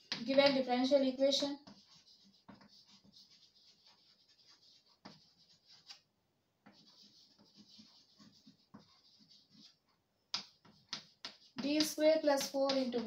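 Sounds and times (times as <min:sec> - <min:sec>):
chalk scratching on blackboard: 0:00.1 - 0:06.0, 0:06.6 - 0:13.0.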